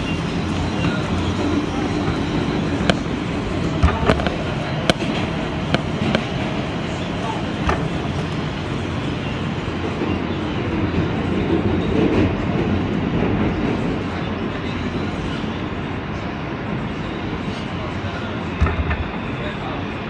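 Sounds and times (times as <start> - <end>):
subway wheels rumbling on rails: 0.0 - 20.0.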